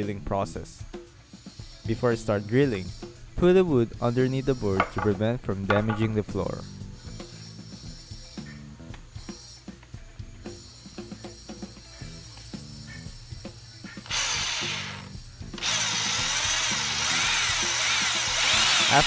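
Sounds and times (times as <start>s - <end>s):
soft background music: 0.0s - 19.0s
electric drill boring into wood: 14.0s - 19.0s.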